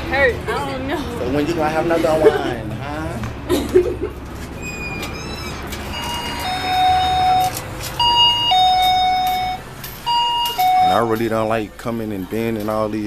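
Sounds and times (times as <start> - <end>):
electronic door chime ding-dong: 5.9 - 11.1.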